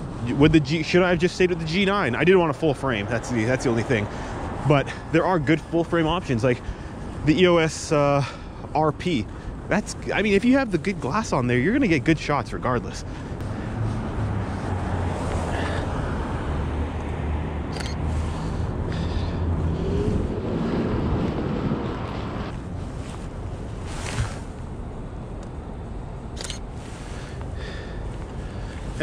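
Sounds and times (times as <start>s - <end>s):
city street traffic: 0.0s - 29.0s
low engine hum: 8.2s - 29.0s.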